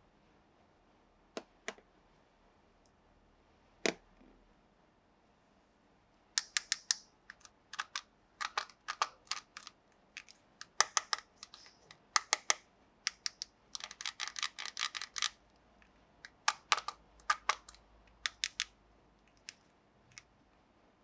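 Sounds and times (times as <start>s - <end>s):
plastic toy pieces clicking: 6.4s - 15.4s, 16.3s - 18.7s.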